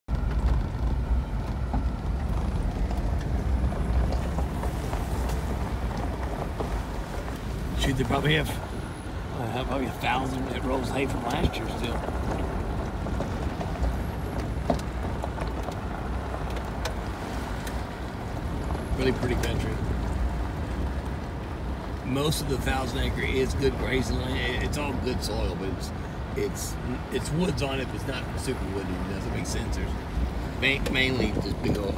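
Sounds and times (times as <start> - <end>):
vehicle engine and road rumble: 0.0 - 31.9.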